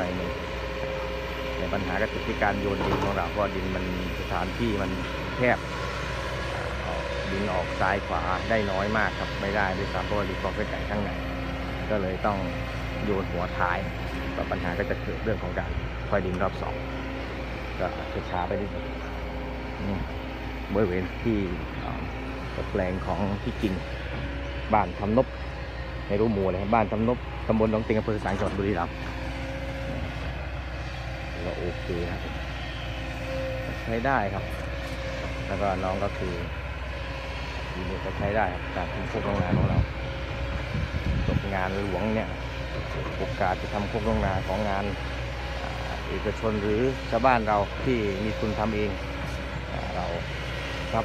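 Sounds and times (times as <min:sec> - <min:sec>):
distant excavator diesel engine: 0:00.0 - 0:51.0.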